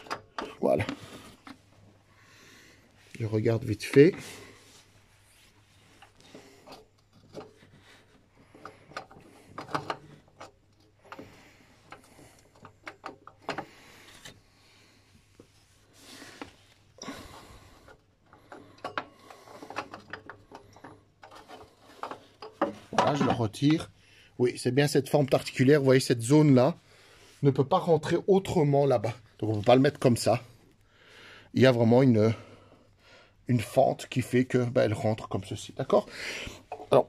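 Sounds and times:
metal parts handled by hand: 0.0 - 1.7, 5.5 - 14.4, 16.4 - 23.9, 35.8 - 37.0.

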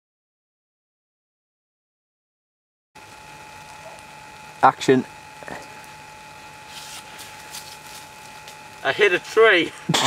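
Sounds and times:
electrical whine: 3.0 - 10.0
recording hiss: 6.6 - 10.0
faint rustles: 6.7 - 9.4.

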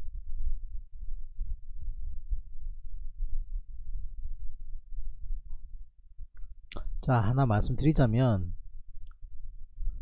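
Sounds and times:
low rumble on microphone: 0.0 - 10.0.

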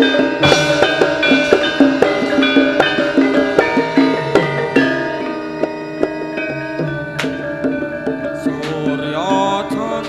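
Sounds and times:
hand drum strokes: 0.0 - 10.0
ringing metallophone tones: 0.0 - 10.0.

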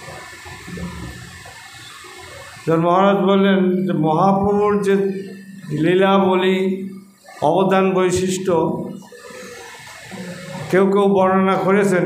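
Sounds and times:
faint background noise: 0.0 - 12.0
man speaking: 2.7 - 9.0, 10.7 - 12.0.

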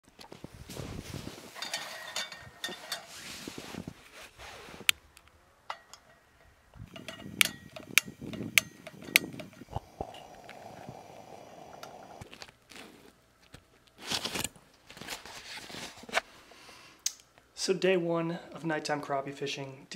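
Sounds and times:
handling noise: 0.0 - 16.2
igniter clicks: 6.8 - 9.6
lantern mantle hissing: 7.7 - 12.9.

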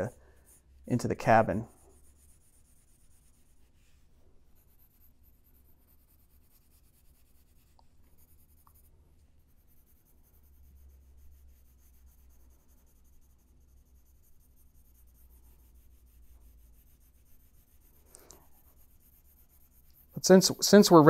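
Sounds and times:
pencil shading on paper: 0.0 - 21.0.

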